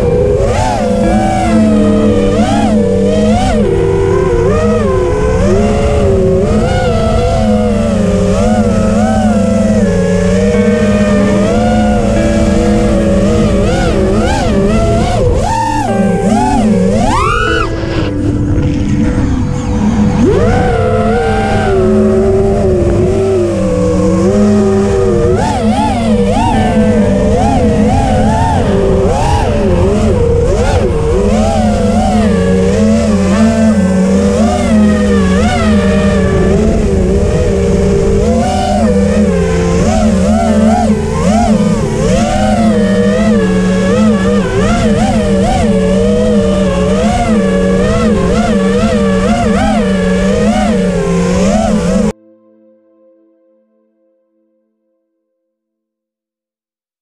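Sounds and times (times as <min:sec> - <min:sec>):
quadcopter motors whining: 0:00.0 - 0:52.1.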